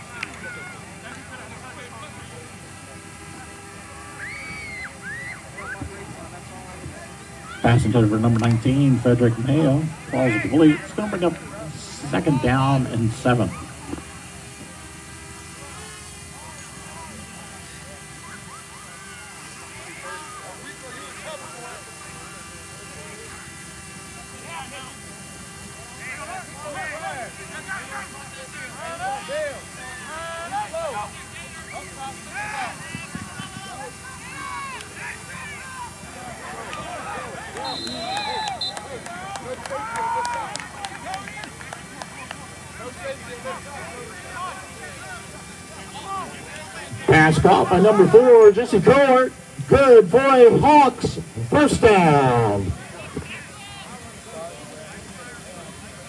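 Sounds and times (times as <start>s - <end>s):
distant people shouting: 0.0s - 1.2s, 3.5s - 6.2s, 7.0s - 7.9s, 25.6s - 41.8s
referee whistle blast: 37.6s - 38.9s.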